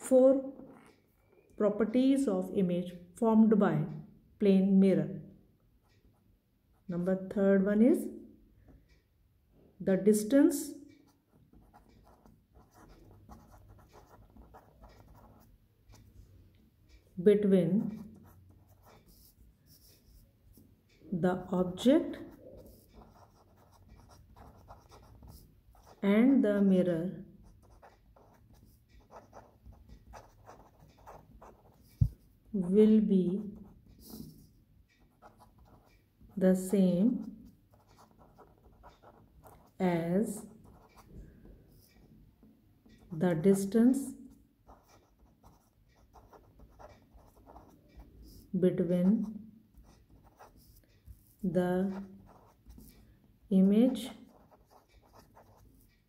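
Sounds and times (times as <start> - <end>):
marker scratching on paper: 11.1 - 16.1, 17.4 - 20.6, 21.6 - 41.1, 44.7 - 56.0.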